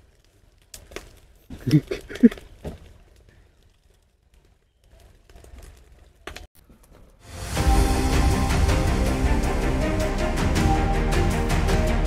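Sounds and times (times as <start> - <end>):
firewood clicking and knocking: 0.0 - 7.2.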